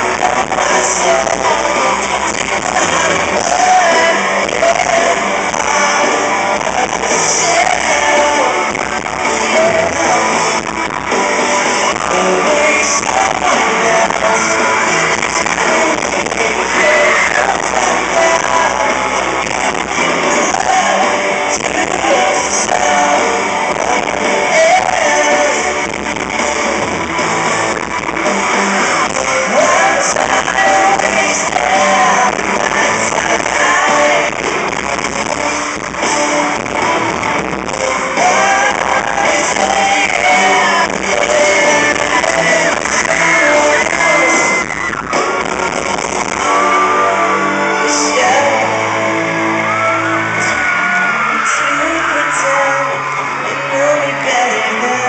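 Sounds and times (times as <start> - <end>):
male voice singing: 0.0 - 26.2, 27.7 - 55.0
live pop-rock band: 0.0 - 55.0.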